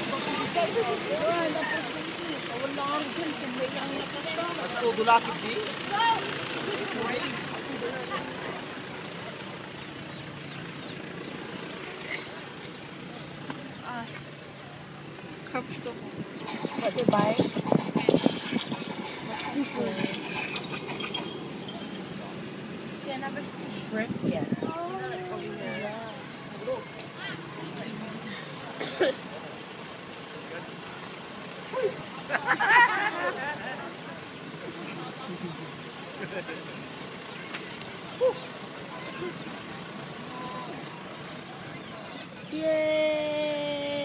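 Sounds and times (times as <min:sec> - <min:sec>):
roadside background noise: 0:00.0 - 0:44.0
vehicle engine idling: 0:00.0 - 0:44.0
voices: 0:00.0 - 0:44.0.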